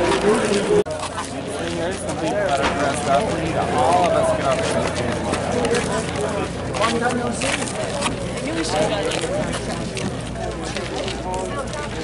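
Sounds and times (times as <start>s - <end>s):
people talking outdoors: 0.0s - 12.0s.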